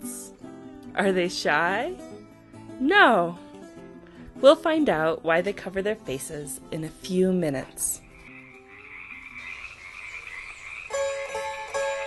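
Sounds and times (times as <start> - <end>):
plucked-string music: 0.0 - 9.4, 10.9 - 12.0
chorus of frogs calling: 8.0 - 12.0.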